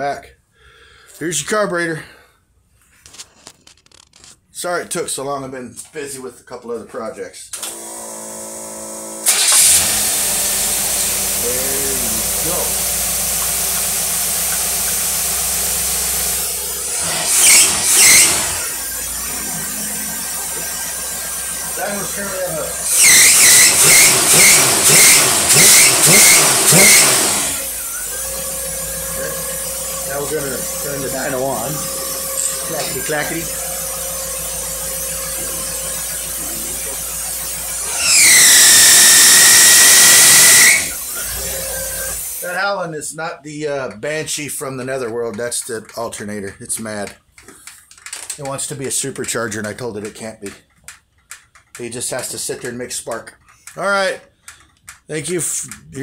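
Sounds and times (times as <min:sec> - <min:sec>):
engine running and revving: 0:08.4 - 0:42.2
alternator whine: 0:09.3 - 0:42.3
loud high squeal: 0:17.1 - 0:18.7, 0:22.8 - 0:27.2, 0:37.9 - 0:42.2.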